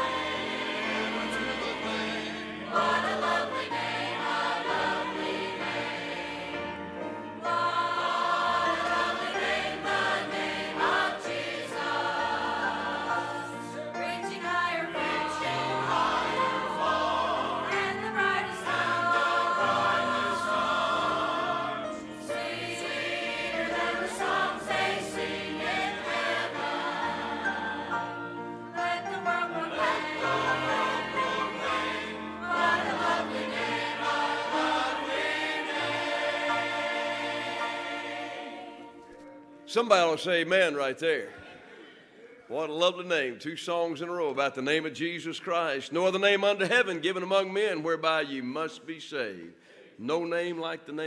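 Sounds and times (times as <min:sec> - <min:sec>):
choir singing a hymn: 0:00.0 - 0:39.6.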